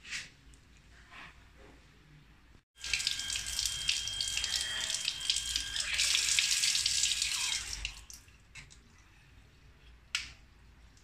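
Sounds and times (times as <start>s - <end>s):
pump whine: 2.8s - 8.1s
water running from tap: 2.8s - 8.2s.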